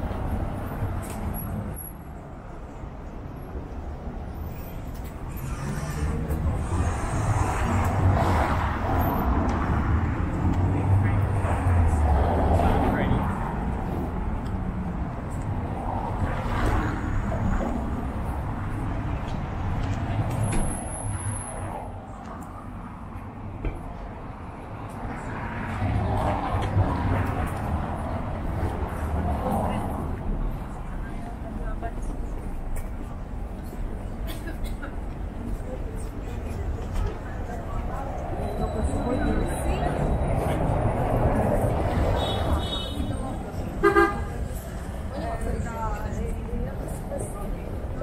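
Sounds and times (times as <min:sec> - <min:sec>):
car traffic passing: 0:00.0 - 0:48.0
passers-by talking: 0:00.0 - 0:48.0.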